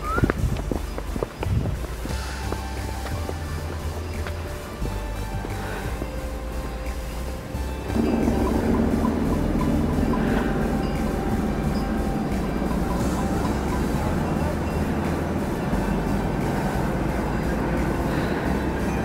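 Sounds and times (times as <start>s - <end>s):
soft background music: 0.0s - 19.0s
steady rushing noise: 0.0s - 19.0s.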